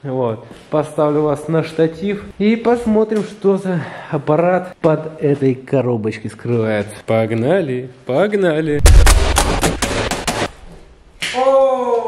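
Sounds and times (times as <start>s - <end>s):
heavy thump: 8.7s - 11.0s.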